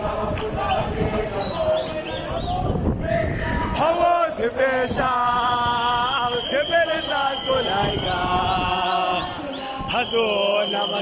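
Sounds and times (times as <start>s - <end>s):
crowd singing in chorus: 0.0s - 11.0s.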